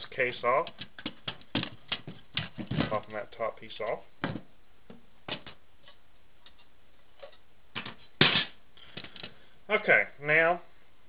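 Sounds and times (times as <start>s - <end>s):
disc drive knocking on wood: 0.7s - 3.0s.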